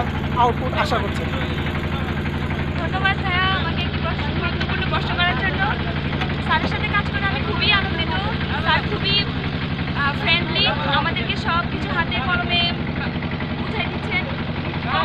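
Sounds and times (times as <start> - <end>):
motorboat engine humming: 0.0 - 15.0
woman talking: 2.8 - 15.0.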